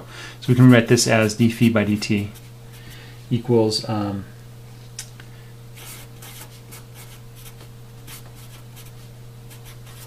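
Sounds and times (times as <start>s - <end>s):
steady low hum: 0.0s - 10.0s
marker writing on paper: 5.8s - 8.9s, 9.5s - 10.0s.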